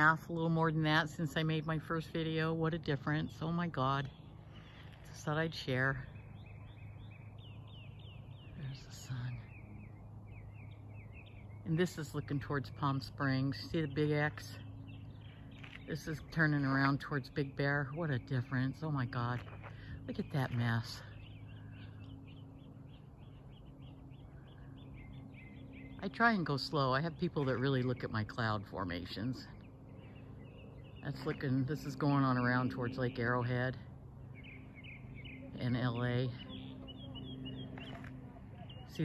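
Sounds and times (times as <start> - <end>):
faint low hum: 0.0 - 39.0
songbird chirping: 0.0 - 39.0.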